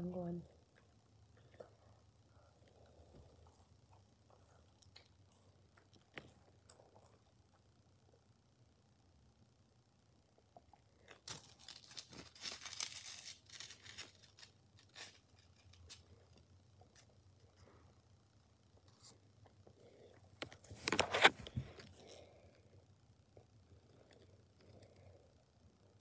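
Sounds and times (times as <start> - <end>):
packaging rustling and crackling: 11.1 - 16.0.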